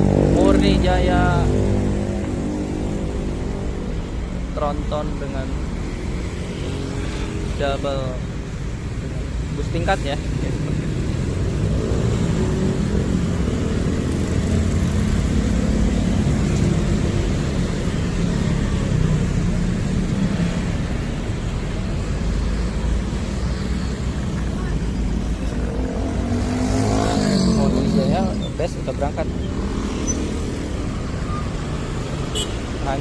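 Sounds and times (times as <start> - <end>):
road traffic passing: 0.0 - 33.0.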